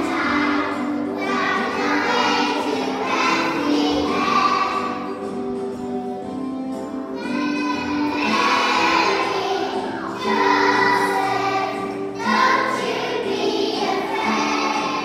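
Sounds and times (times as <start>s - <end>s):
children singing together: 0.0s - 5.5s, 7.1s - 15.0s
musical accompaniment: 0.0s - 15.0s.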